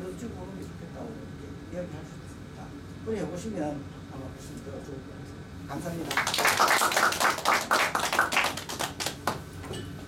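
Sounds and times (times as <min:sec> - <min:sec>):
scattered hand clapping: 0:06.1 - 0:09.5.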